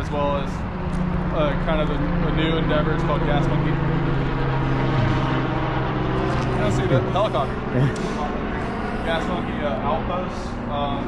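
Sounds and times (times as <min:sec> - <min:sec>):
helicopter flying overhead: 0:00.0 - 0:11.0.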